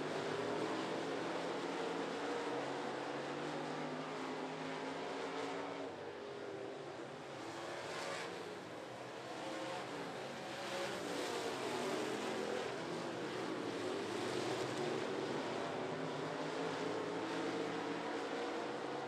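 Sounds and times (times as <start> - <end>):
race car engines running hard: 0.0 - 19.0.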